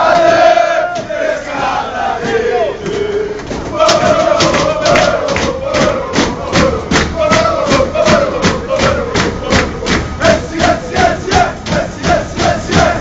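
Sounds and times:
crowd chanting: 0:00.0 - 0:13.0
rhythmic hand claps: 0:00.0 - 0:13.0.

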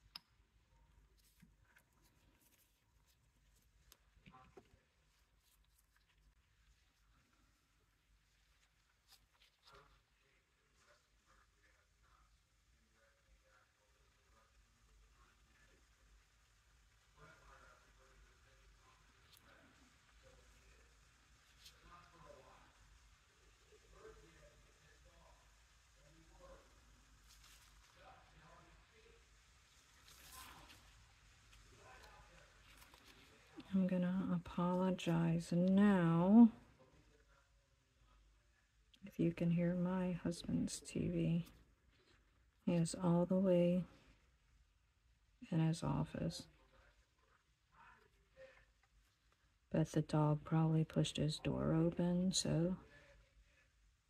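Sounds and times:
soft rustle: 0:00.8 - 0:12.2, 0:26.1 - 0:35.9
distant television voices: 0:08.8 - 0:44.2.

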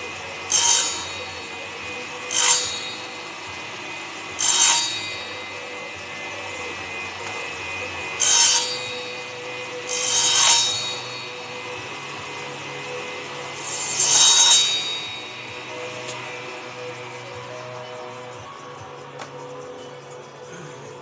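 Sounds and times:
saw blade cutting wood: 0:00.0 - 0:20.5
table saw humming: 0:00.0 - 0:21.0.

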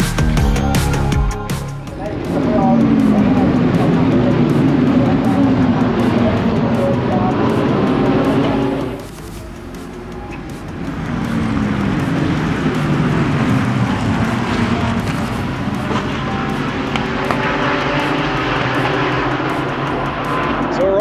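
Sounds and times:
race cars at full throttle: 0:01.8 - 0:21.0.

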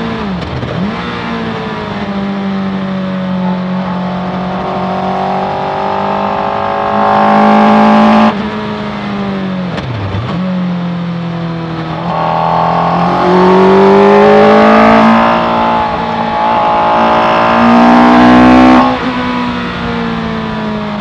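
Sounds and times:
motorcycle engine revving: 0:00.0 - 0:09.1, 0:09.7 - 0:20.7.

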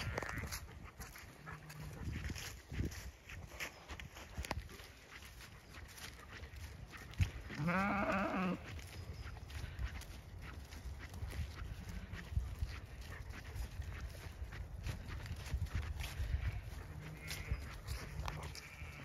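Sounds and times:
sheep bleating: 0:00.0 - 0:00.5, 0:07.6 - 0:08.7, 0:16.9 - 0:19.0.

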